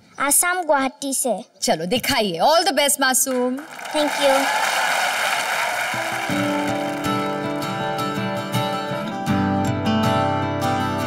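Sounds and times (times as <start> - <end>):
acoustic guitar playing: 5.9 - 11.0.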